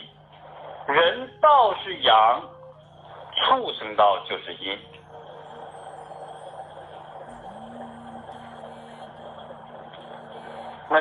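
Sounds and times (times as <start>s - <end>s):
faint low hum: 0.0s - 11.0s
steady background hiss: 0.0s - 11.0s
faint held tone: 1.2s - 11.0s.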